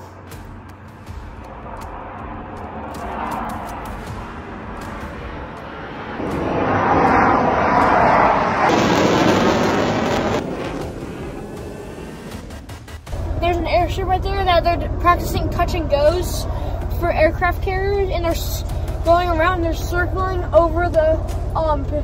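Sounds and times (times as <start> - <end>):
fighter jet passing overhead: 0.0 - 13.5.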